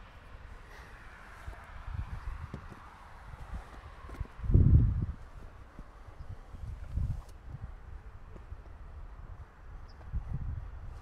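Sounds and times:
wind rumbling on microphone: 0:00.0 - 0:11.0
faint footsteps on asphalt: 0:00.5 - 0:11.0.

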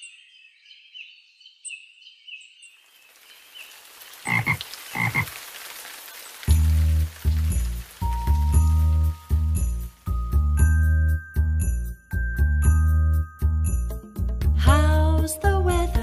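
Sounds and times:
faint bird chirps: 0:00.0 - 0:05.2
rain hissing: 0:02.8 - 0:11.2
frog croaks: 0:04.2 - 0:05.4
children's song with bass beat: 0:07.5 - 0:16.0.

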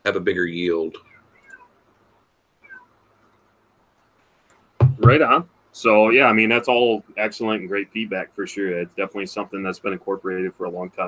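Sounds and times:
high-pitched animal calls: 0:02.6 - 0:03.0.

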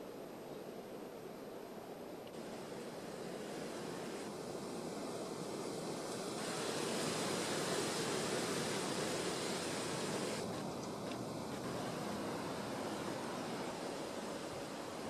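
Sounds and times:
wind blowing: 0:02.3 - 0:15.0.

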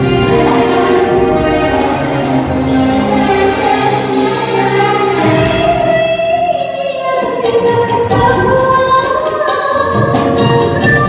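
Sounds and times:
band accompanying: 0:00.0 - 0:11.0.

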